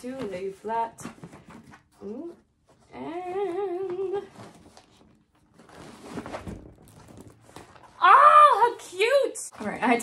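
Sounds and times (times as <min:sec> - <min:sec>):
plastic film crinkling: 0:04.0 - 0:08.2.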